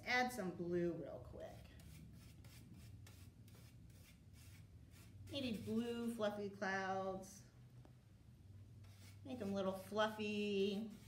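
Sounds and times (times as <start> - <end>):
low room hum: 0.0 - 11.0
paintbrush rubbing on paper: 1.5 - 6.2, 8.8 - 11.0.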